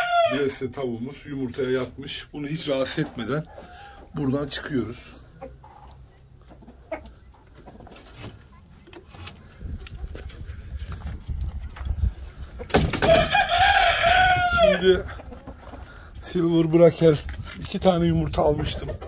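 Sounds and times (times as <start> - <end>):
rooster crowing: 0.0 - 0.4, 13.0 - 14.9.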